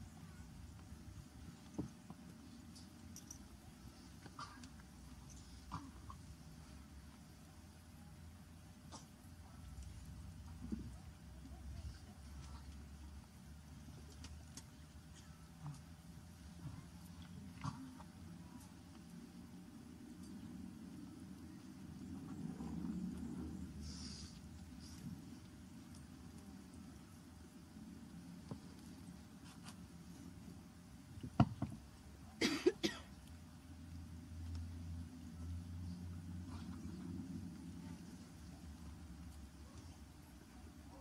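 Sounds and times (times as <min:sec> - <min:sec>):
low background rumble: 0:00.0 - 0:41.0
person coughing: 0:32.4 - 0:33.1.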